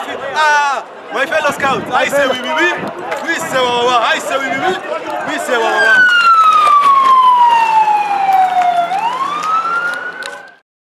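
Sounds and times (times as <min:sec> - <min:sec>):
siren wailing: 0:05.6 - 0:10.6.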